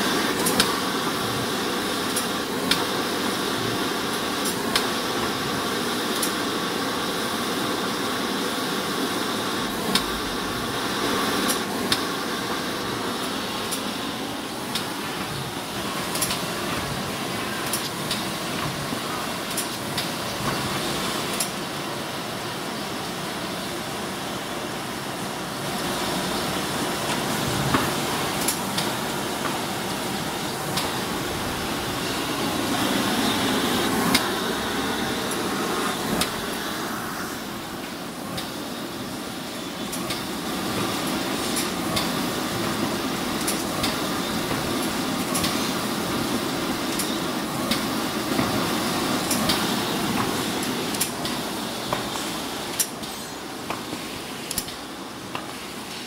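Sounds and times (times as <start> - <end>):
laminating machine clatter: 0.0 - 6.6, 13.0 - 21.8, 37.8 - 56.0.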